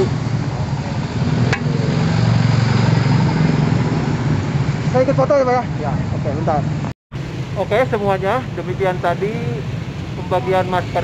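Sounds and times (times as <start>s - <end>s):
vehicle engine rumbling past: 0.0s - 11.0s.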